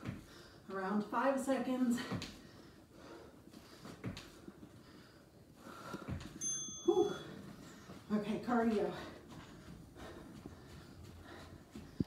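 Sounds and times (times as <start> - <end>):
woman breathing hard: 2.0 - 6.4, 8.9 - 12.0.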